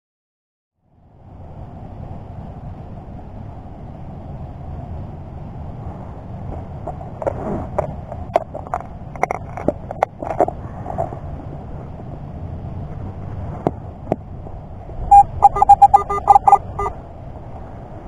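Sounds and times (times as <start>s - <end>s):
metal detector beeps: 15.1s - 17.0s.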